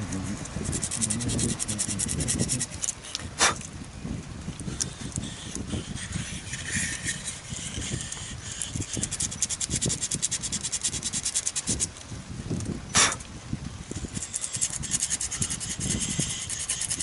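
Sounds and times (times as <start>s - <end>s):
sandpaper rubbing on wood: 0.0s - 3.6s, 4.7s - 11.9s, 13.9s - 17.0s.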